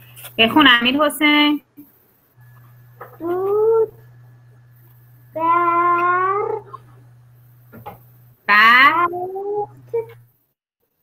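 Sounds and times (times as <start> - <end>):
low hum: 2.0 - 10.4
boy sounding out syllables: 3.2 - 4.0, 5.3 - 6.9, 8.5 - 10.2.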